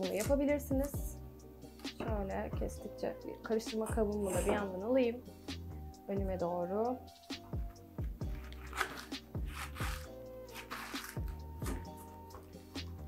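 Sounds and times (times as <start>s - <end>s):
music with deep beat: 0.0s - 6.5s, 7.1s - 13.0s.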